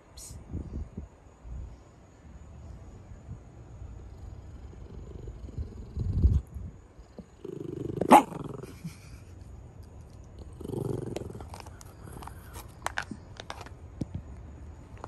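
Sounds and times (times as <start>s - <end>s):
dog growling low: 4.2s - 6.5s, 7.1s - 9.2s, 10.4s - 12.6s
dog chewing: 9.9s - 13.7s.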